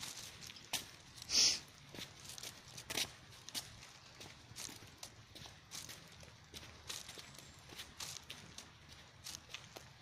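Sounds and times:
footsteps on gravel road: 0.0 - 10.0.

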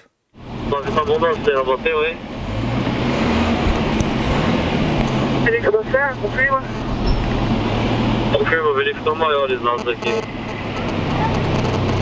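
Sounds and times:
vehicle engine and road noise: 0.0 - 12.0.

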